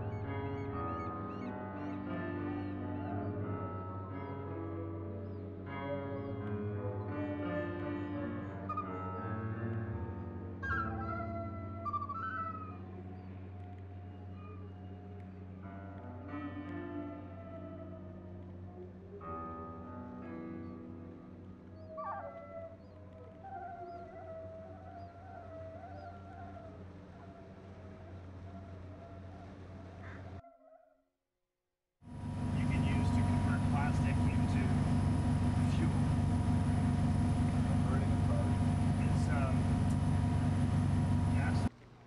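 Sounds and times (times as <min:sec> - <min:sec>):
loud steady low rumble: 0:32.1 - 0:41.7
low drone: 0:32.1 - 0:41.7
steady whining tones: 0:32.1 - 0:41.8.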